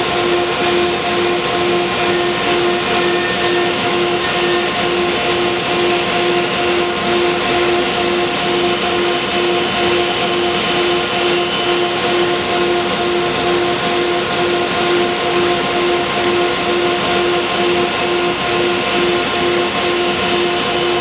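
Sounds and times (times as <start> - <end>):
bandsaw cutting wood: 0.0 - 21.0.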